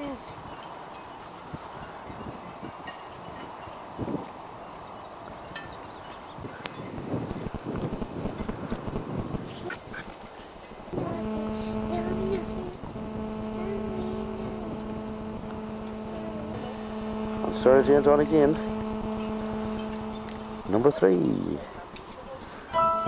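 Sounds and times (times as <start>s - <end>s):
wind noise on microphone: 0.3s - 10.1s, 10.8s - 20.7s
pitched motor hum: 10.9s - 21.7s
wavering tones: 11.0s - 21.6s.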